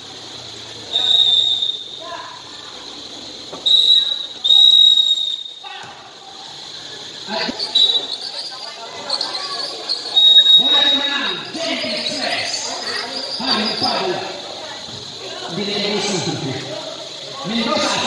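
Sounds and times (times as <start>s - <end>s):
basketball game noise: 0.0s - 18.0s
referee's whistle blasts: 0.9s - 2.2s, 3.5s - 5.9s, 7.4s - 12.6s.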